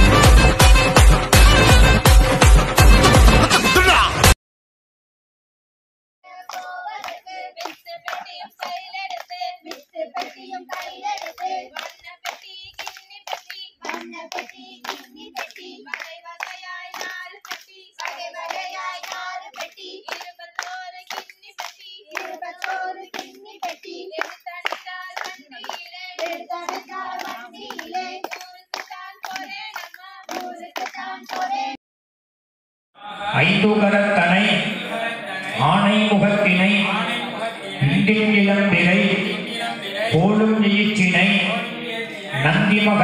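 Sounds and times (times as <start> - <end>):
rhythmic hand clapping: 0.0 - 3.8, 6.3 - 31.8
women singing folk song: 6.2 - 31.8.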